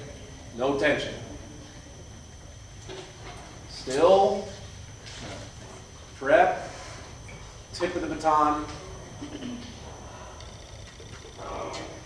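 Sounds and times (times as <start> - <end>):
low room rumble: 0.0 - 12.0.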